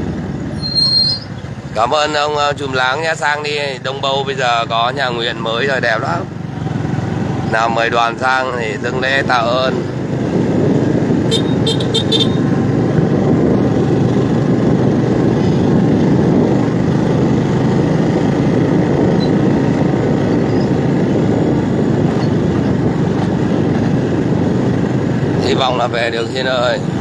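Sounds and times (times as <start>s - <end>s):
wind and road noise: 0.0s - 27.0s.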